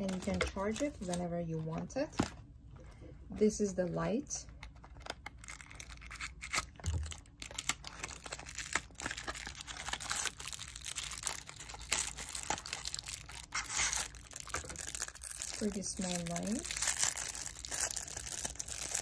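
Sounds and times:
plastic bags crinkling: 0:00.0 - 0:01.8, 0:04.7 - 0:19.0.

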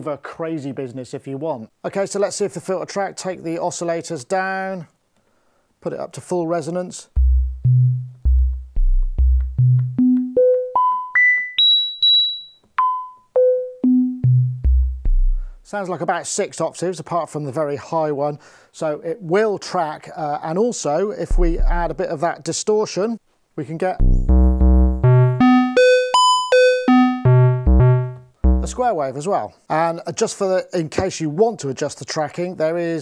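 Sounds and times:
synthesizer plucked sine notes: 0:07.2 - 0:10.6, 0:13.8 - 0:15.5, 0:21.3 - 0:22.0, 0:24.0 - 0:28.8
buzzy synthesizer filter tone: 0:24.0 - 0:28.8.

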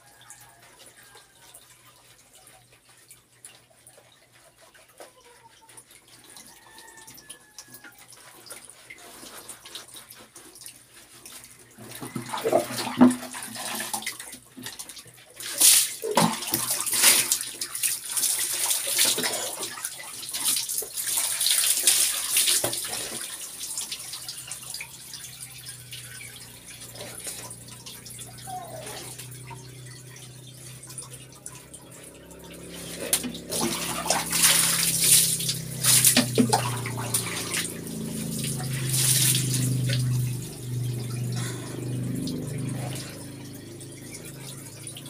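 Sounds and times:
water poured and splashing: 0:00.0 - 0:45.0
rubbing soapy hair: 0:32.6 - 0:44.8.

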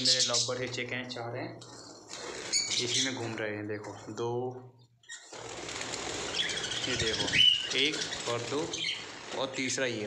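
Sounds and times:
birds fluttering wings: 0:01.8 - 0:03.2, 0:05.2 - 0:10.0.

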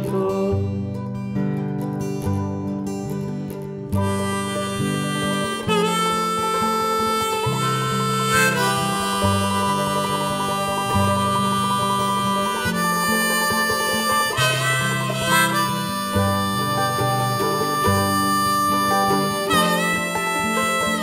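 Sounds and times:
harmonica playing: 0:00.0 - 0:00.8, 0:03.9 - 0:21.0
mandolin: 0:00.0 - 0:21.0
strummed acoustic guitar: 0:00.0 - 0:21.0.

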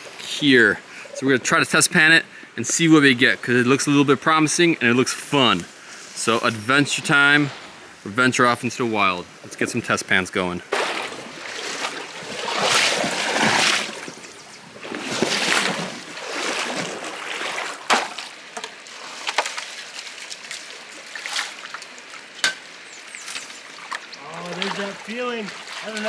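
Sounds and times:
voices: 0:00.2 - 0:10.7, 0:24.1 - 0:26.0
water splashing and sloshing: 0:10.6 - 0:26.0.

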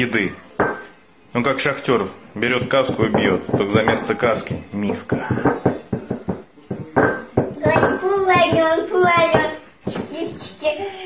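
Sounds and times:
ceramic bowl knocking on wooden floor: 0:00.6 - 0:00.9, 0:02.5 - 0:10.5.

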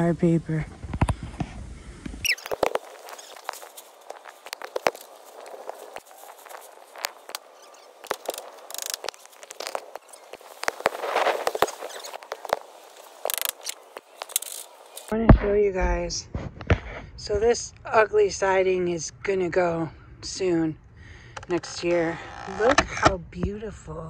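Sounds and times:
plastic tarp rustling and crackling: 0:02.3 - 0:15.1.

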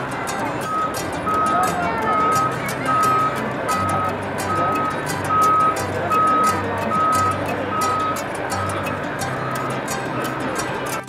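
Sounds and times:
music with steady beat: 0:00.0 - 0:11.0
reversing alarm beeping: 0:00.6 - 0:09.9.

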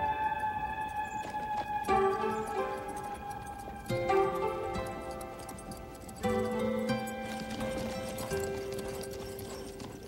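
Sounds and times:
film music with long notes: 0:00.0 - 0:10.0
horse hooves clip-clopping on dirt: 0:00.2 - 0:10.0.

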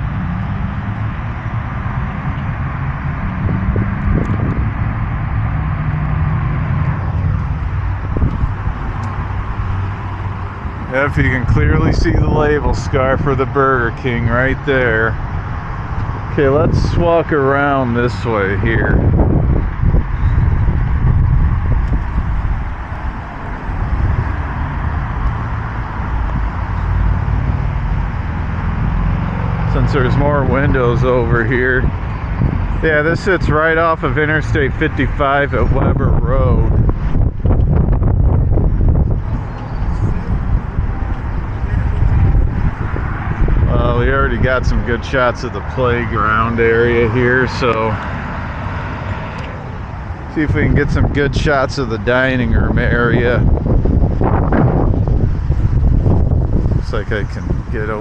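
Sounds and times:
engine drone: 0:00.0 - 0:58.0
heavy low rumble: 0:00.0 - 0:58.0
road traffic: 0:00.0 - 0:58.0.

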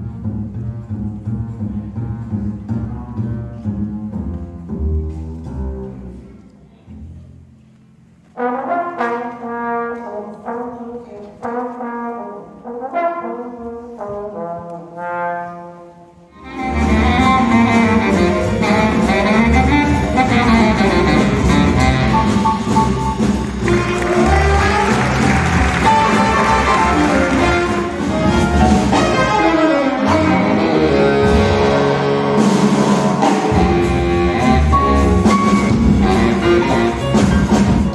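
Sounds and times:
jazz band playing loudly: 0:00.0 - 0:07.6, 0:08.2 - 0:37.9
double bass: 0:00.0 - 0:37.9
trombone phrases: 0:08.3 - 0:37.9.

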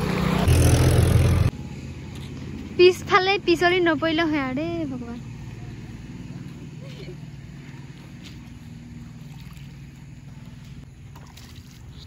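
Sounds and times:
feet splashing through shallow water: 0:05.5 - 0:12.0.

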